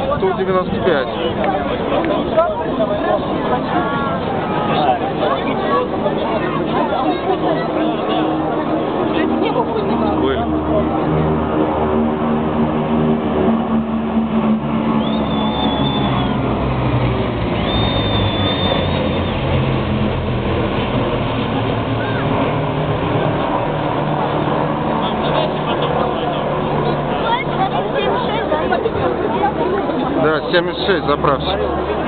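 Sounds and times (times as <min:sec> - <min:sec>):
crowd chatter: 0:00.0 - 0:32.0
jet aircraft drone overhead: 0:00.0 - 0:32.0.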